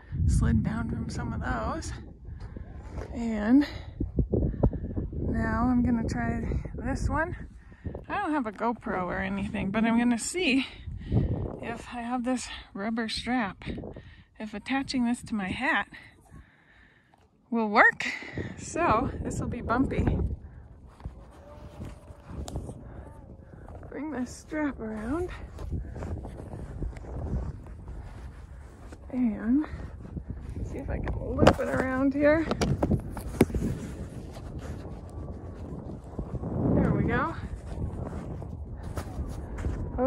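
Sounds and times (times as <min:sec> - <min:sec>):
wind rumble on microphone: 0:00.0 - 0:17.0, 0:17.6 - 0:40.0.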